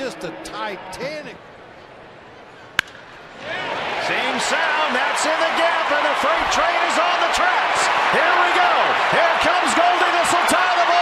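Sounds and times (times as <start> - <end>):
ballpark crowd noise: 0.0 - 11.0
wooden bat cracking against ball: 2.8 - 3.1.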